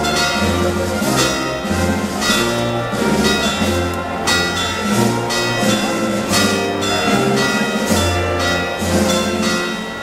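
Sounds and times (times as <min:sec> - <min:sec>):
band playing processional music: 0:00.0 - 0:10.0
church bells ringing: 0:00.0 - 0:10.0.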